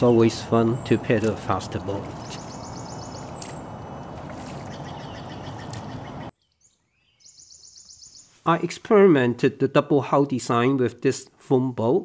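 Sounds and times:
bird trilling: 0:00.0 - 0:08.4
outdoor background noise: 0:00.0 - 0:12.0.

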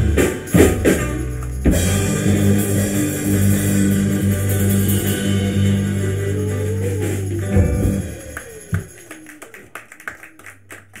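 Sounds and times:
scattered applause: 0:05.8 - 0:11.0.

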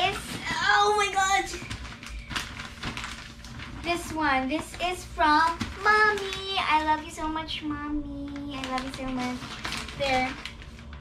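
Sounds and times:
girl making wordless sounds: 0:00.0 - 0:01.6
gift wrap rustling: 0:00.0 - 0:07.5, 0:08.2 - 0:11.0.

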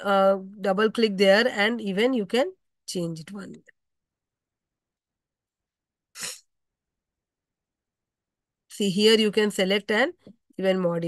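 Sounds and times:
person sneezing: 0:06.1 - 0:06.5.

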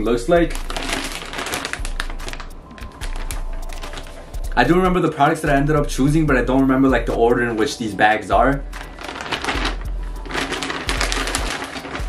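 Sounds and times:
plastic mailer bag crinkling: 0:00.0 - 0:04.7, 0:07.5 - 0:12.0.

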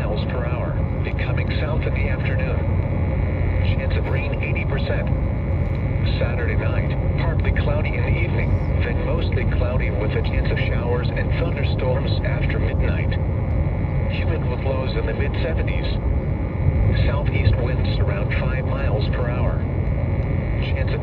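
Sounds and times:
automated voice over radio: 0:00.0 - 0:02.8, 0:03.4 - 0:05.2, 0:06.0 - 0:13.3, 0:14.0 - 0:19.8, 0:20.5 - 0:21.0
low rumbling hum: 0:00.0 - 0:21.0
radio static: 0:00.0 - 0:21.0.

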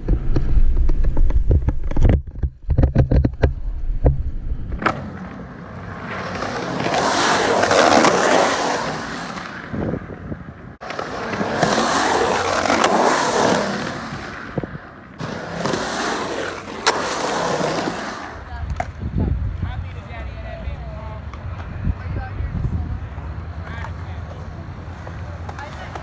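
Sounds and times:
hard wheels rolling over concrete: 0:00.0 - 0:19.1.

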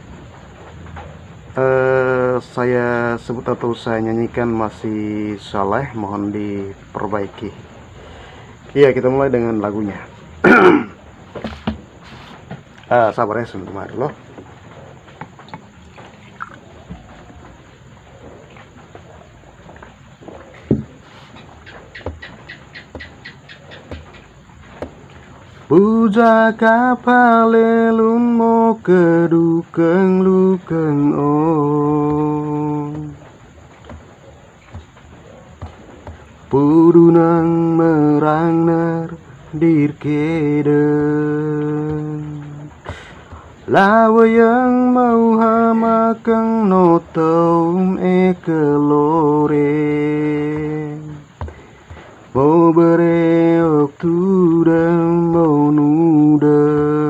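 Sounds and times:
faint high hiss: 0:00.0 - 0:57.0
man breathing in: 0:08.0 - 0:08.6, 0:42.8 - 0:43.5
dull thump: 0:10.5 - 0:12.7, 0:20.3 - 0:21.1, 0:21.7 - 0:23.2, 0:23.8 - 0:25.0, 0:50.5 - 0:52.2.

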